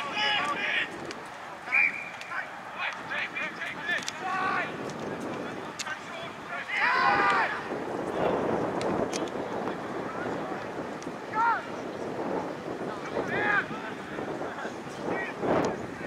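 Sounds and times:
wind buffeting microphone: 0:00.0 - 0:16.0
distant people shouting: 0:01.5 - 0:04.8, 0:05.7 - 0:07.8, 0:11.2 - 0:11.8.

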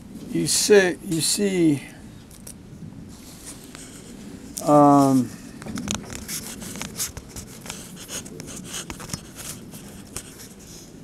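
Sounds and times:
tablet handling rubbing and scraping: 0:03.2 - 0:11.0.

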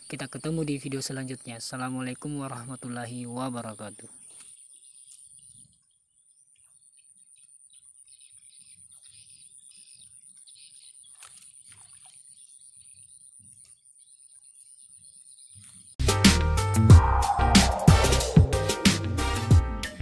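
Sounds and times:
birds chirping: 0:00.0 - 0:16.0
high-pitched whine: 0:16.8 - 0:18.8.

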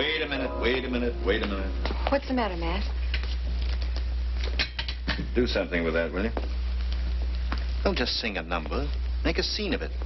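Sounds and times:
film soundtrack hum and hiss: 0:00.0 - 0:10.0.

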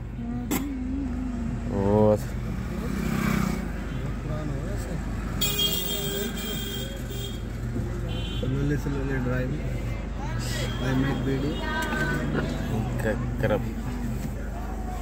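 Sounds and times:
murmured voices: 0:09.1 - 0:15.0.

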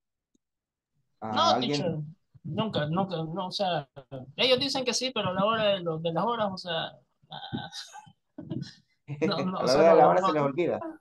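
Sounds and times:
person's voice over video call: 0:01.2 - 0:11.0.

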